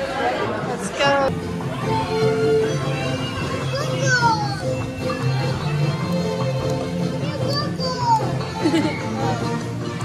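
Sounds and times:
festive music with bass line: 0:01.3 - 0:10.0.

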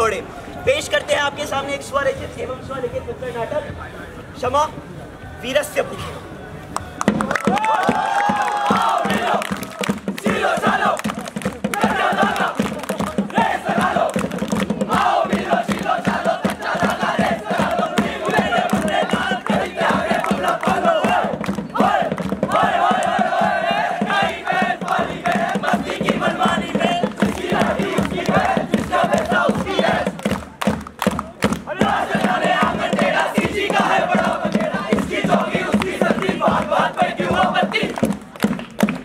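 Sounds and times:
steady drumbeat: 0:07.0 - 0:39.0.

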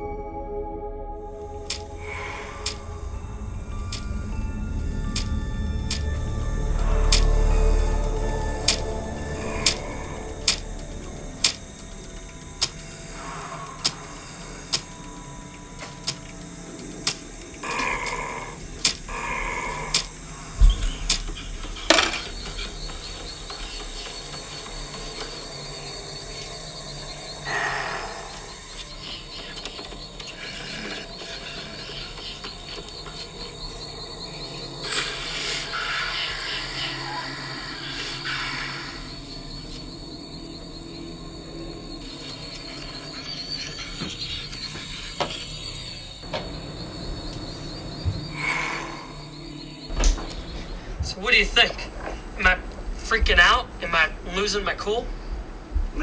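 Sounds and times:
high fast-pulsing tone: 0:01.4 - 0:29.0
sharp ticks: 0:01.5 - 0:33.5
heavy low thump: 0:20.5 - 0:23.2, 0:46.2 - 0:48.4.

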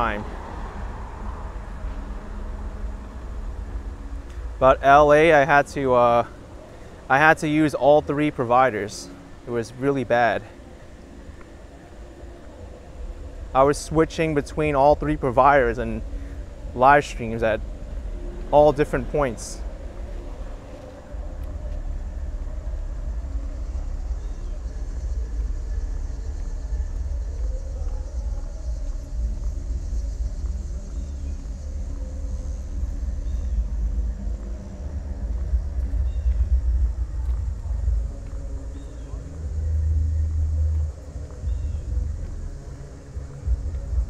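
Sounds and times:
traffic rumble: 0:00.0 - 0:44.0.

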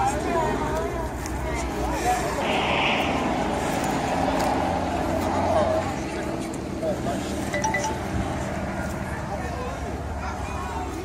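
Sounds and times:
steady outdoor noise: 0:00.0 - 0:11.0.

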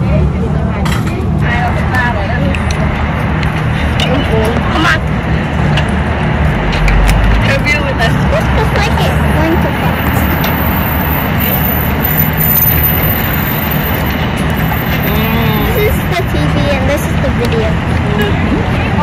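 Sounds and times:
road traffic: 0:00.0 - 0:19.0.

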